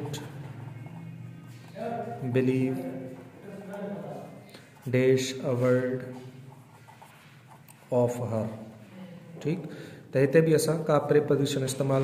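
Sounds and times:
pen scratching on paper: 0:04.6 - 0:08.9.

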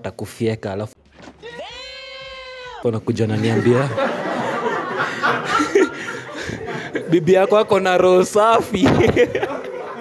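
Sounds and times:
people laughing: 0:03.2 - 0:10.0.

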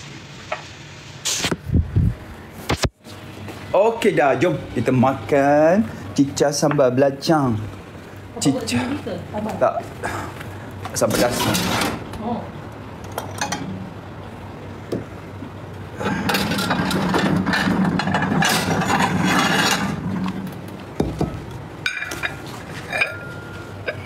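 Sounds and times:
clinks of dishes or cutlery: 0:13.2 - 0:13.7, 0:21.9 - 0:24.0.

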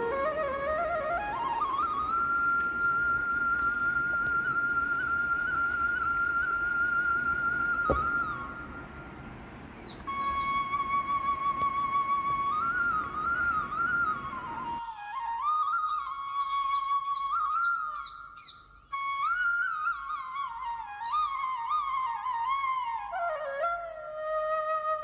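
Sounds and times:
flute melody: 0:00.0 - 0:09.1, 0:09.9 - 0:25.0
soft thump: 0:07.8 - 0:08.4.

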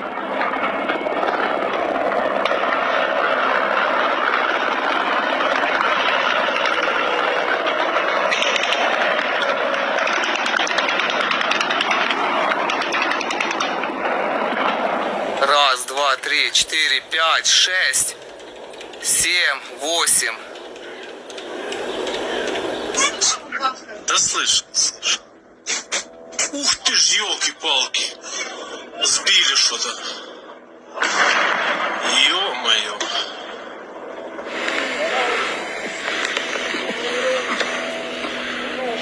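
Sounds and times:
jet roar overhead: 0:00.0 - 0:39.0
steady hissing noise: 0:13.0 - 0:23.5, 0:30.5 - 0:39.0.

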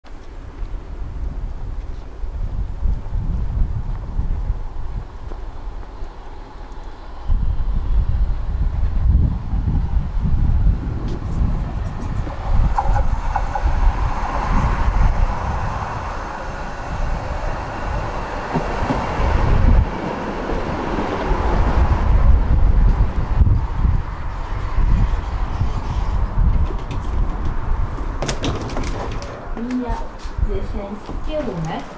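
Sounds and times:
wind rumble on microphone: 0:00.1 - 0:31.9
tram wheels on track: 0:00.2 - 0:31.9
tram wheel squeal: 0:24.2 - 0:26.5.

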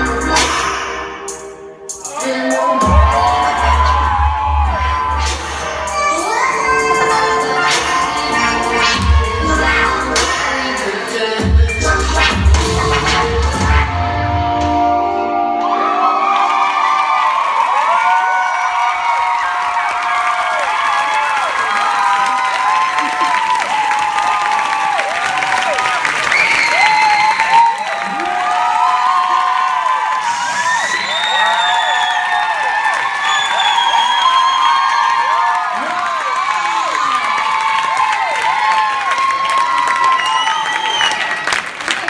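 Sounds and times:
high-pitched screams and whoops: 0:02.0 - 0:10.3, 0:15.6 - 0:41.6
audience cheering and applauding: 0:02.0 - 0:11.5, 0:15.5 - 0:42.0.

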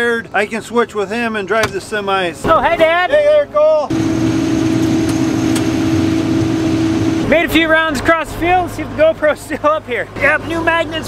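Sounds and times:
combine harvester hum: 0:02.3 - 0:11.0.

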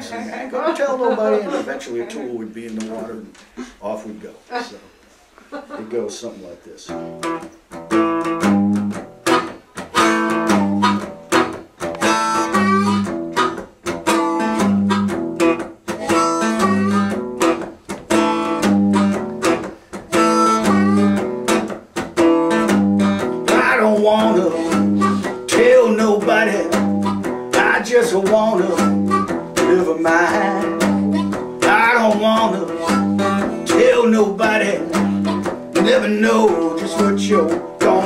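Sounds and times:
acoustic guitar blues riff: 0:06.9 - 0:38.0
harmonica bending notes: 0:06.9 - 0:38.0.

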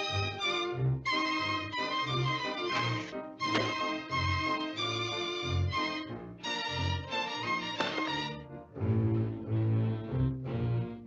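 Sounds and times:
orchestral music with violins: 0:00.0 - 0:11.0.

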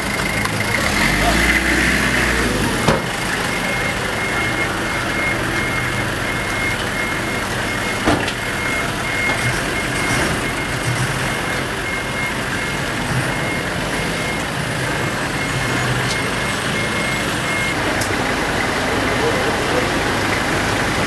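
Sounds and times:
reversing alarm beeping: 0:00.0 - 0:21.0
vehicle and outdoor noise: 0:00.0 - 0:21.0.

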